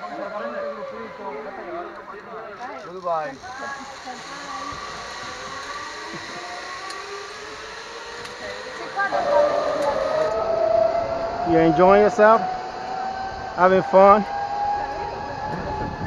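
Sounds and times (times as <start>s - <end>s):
zipline pulleys whining on cable: 0.0s - 16.0s.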